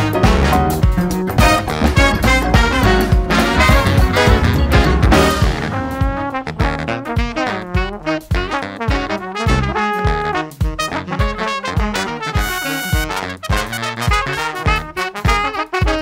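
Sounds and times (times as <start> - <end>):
horn section playing: 0.0 - 16.0
steady drum beat: 0.0 - 16.0.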